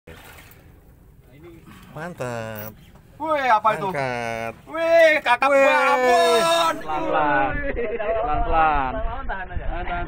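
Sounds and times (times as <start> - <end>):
low background rumble: 0.6 - 10.0
man speaking loudly: 1.9 - 7.3.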